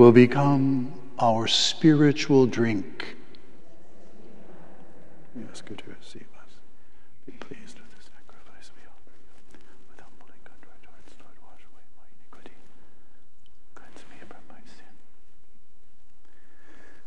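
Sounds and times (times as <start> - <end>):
person whispering prayers: 0.0 - 15.3.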